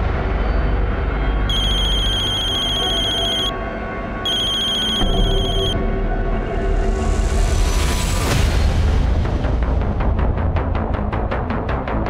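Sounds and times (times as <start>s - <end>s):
tense music drone: 0.0s - 12.0s
phone ringing: 1.5s - 3.6s, 4.3s - 5.8s.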